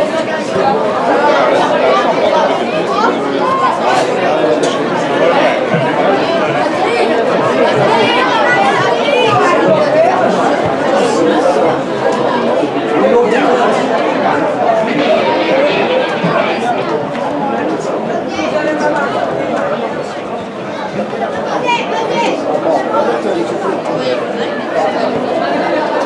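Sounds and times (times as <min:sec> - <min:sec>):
crowd chattering: 0:00.0 - 0:26.0.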